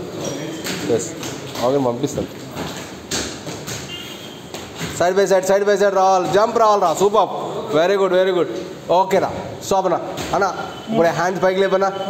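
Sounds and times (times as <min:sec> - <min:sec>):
shoe squeak on floor: 0:00.2 - 0:01.6, 0:03.5 - 0:05.0, 0:10.3 - 0:11.0.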